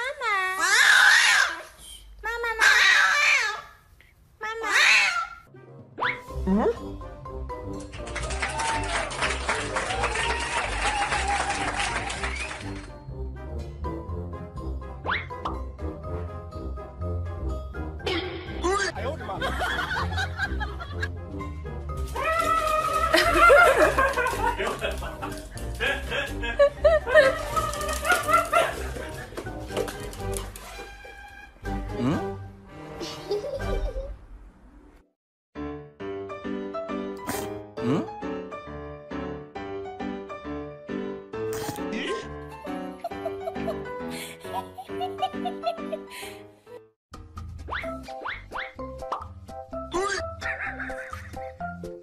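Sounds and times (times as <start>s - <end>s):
background music: 5.5s - 34.2s, 35.6s - 52.0s.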